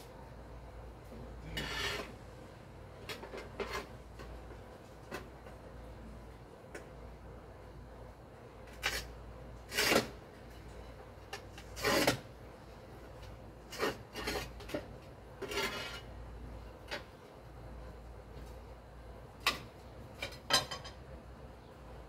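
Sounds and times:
scraping on masonry wall: 0:01.4 - 0:02.2, 0:03.0 - 0:05.6, 0:08.6 - 0:10.6, 0:11.3 - 0:12.4, 0:13.6 - 0:16.2.

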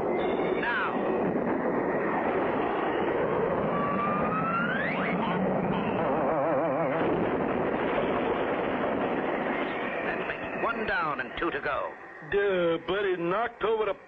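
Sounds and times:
cartoon jet engine rushing: 0:02.2 - 0:10.6
warbling tone: 0:03.6 - 0:08.0
rising whistle: 0:09.2 - 0:11.2.

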